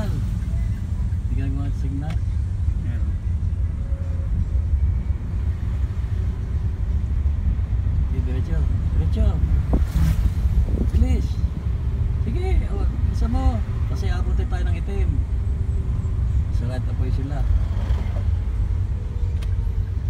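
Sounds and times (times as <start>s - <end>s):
car engine and road noise: 0.0s - 20.0s
click: 19.3s - 19.6s.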